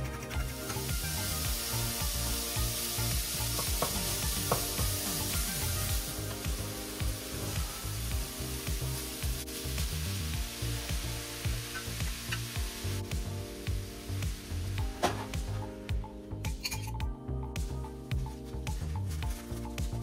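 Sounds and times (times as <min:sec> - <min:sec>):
soft background music: 0:00.0 - 0:20.0
meat sizzling in a pan: 0:00.4 - 0:15.6.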